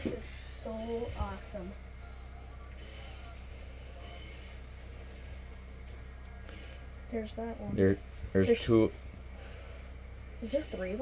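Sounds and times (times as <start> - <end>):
faint voices: 0.0 - 8.3
low hum: 0.0 - 11.0.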